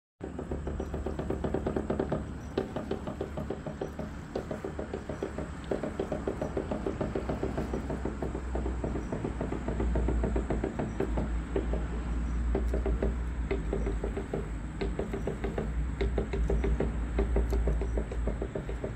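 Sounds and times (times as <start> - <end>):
boat engine chugging: 0.2 - 18.9.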